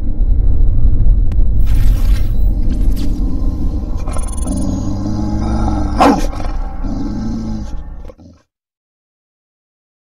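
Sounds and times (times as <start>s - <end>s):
deep rumble: 0.0s - 8.2s
sharp sweeping hit: 1.6s - 4.6s.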